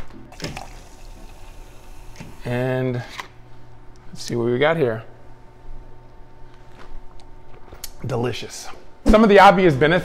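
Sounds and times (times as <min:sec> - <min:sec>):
liquid pouring into a plastic cup: 0:00.3 - 0:02.2.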